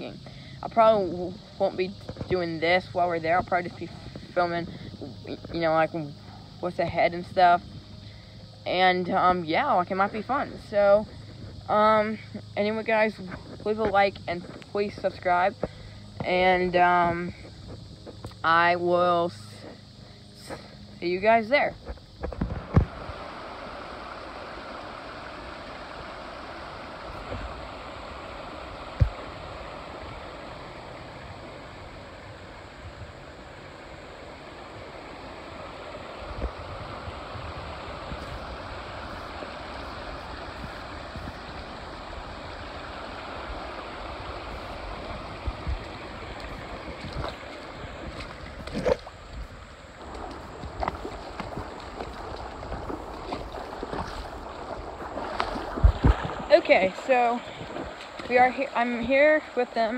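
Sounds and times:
water running over rocks: 0.0s - 59.9s
low thumps on microphone: 29.0s - 29.2s, 55.4s - 56.5s.

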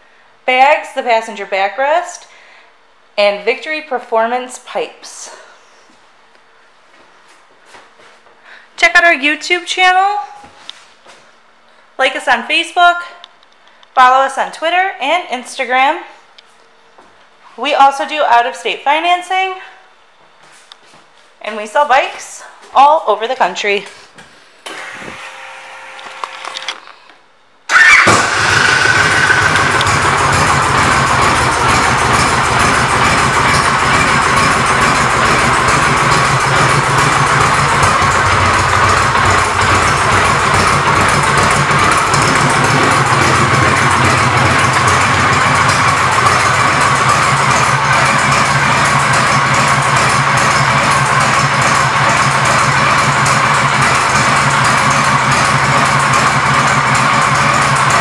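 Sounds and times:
motorcycle engine idling: 27.8s - 58.0s.

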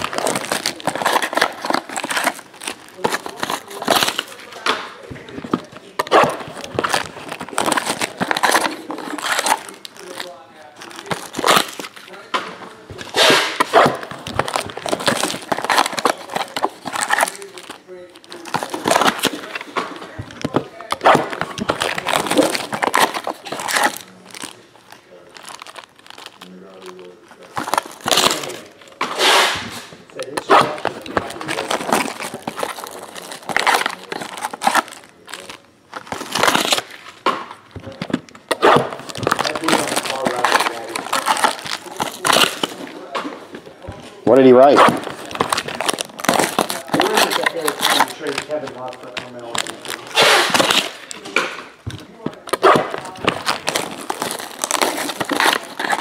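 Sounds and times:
plastic wrap crinkling and tearing: 0.0s - 56.0s.

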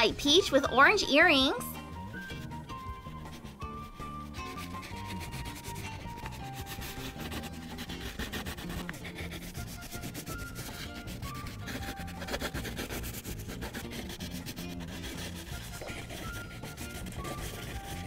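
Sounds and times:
simple background music melody: 0.0s - 18.0s
crayon rubbing on paper: 2.2s - 18.0s.

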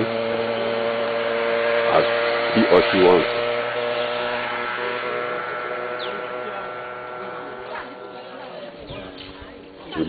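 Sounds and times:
motor drone: 0.0s - 10.0s
high falling chirp: 3.7s - 10.0s.

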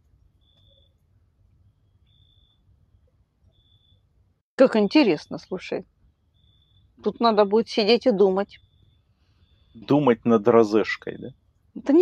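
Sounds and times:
night insect chirping: 0.2s - 4.2s, 5.0s - 11.5s.

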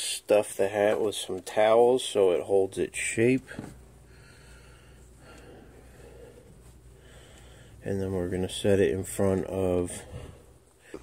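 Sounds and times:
low steady hum: 0.0s - 11.0s
towels rustling: 5.0s - 10.8s.

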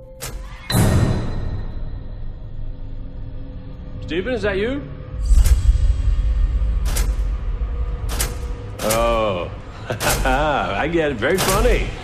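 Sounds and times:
low rumbling drone: 0.7s - 12.0s.

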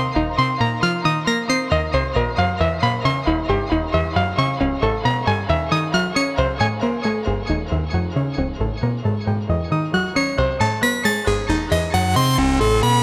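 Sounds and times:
analog synthesizer plucky notes: 1.7s - 13.0s.

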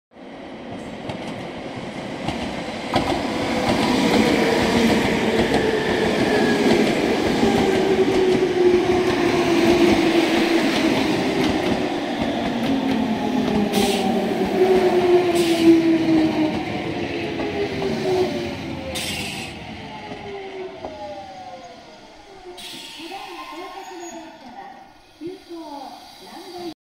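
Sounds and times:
train wheels on rails: 0.5s - 26.7s
electric train braking to a stop: 3.6s - 26.7s
brief hisses: 22.6s - 23.4s.

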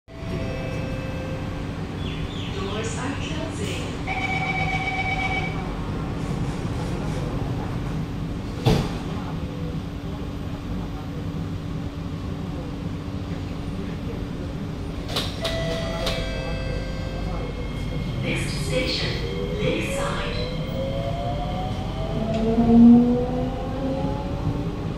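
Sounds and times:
door-closing warning tone: 0.1s - 1.6s, 4.1s - 5.7s, 15.3s - 20.8s
train carriage rumbling: 0.1s - 24.9s
train doors thudding shut: 8.6s - 9.2s, 15.0s - 16.4s.

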